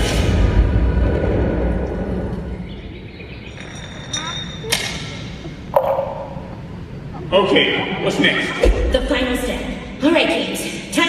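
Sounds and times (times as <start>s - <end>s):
low rumble: 0.0s - 3.4s
high ringing tones: 3.4s - 7.2s.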